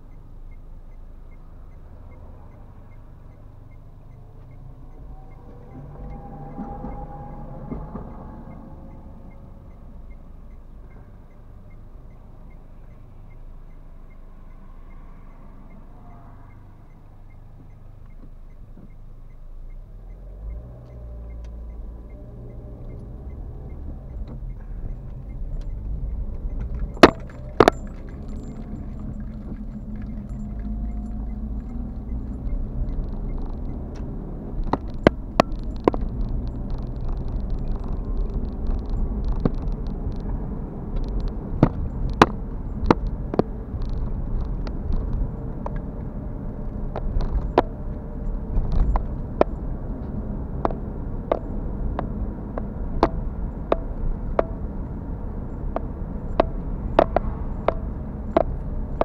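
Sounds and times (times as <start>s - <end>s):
car engine and tyre rumble: 0.0s - 59.0s
sharp clicks and knocks: 20.5s - 59.0s.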